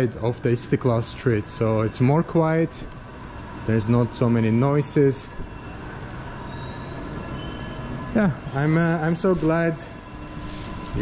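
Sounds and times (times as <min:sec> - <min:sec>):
distant traffic hum: 0:00.0 - 0:11.0.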